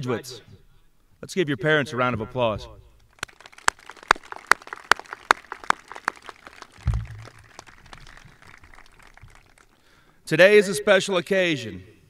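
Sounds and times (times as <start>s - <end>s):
scattered crowd clapping: 3.0s - 10.2s
loud hand clapping: 3.1s - 10.0s
low thump: 6.8s - 7.4s.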